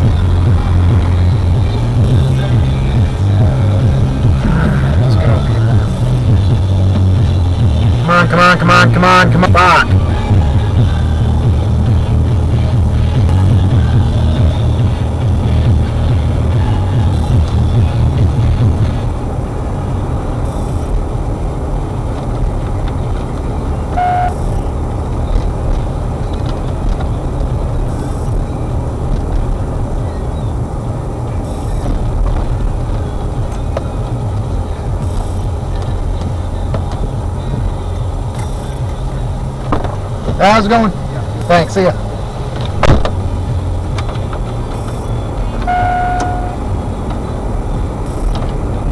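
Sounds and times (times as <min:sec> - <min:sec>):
car engine and tyre rumble: 0:00.0 - 0:48.9
brief short tone: 0:24.0 - 0:24.4, 0:44.8 - 0:46.6.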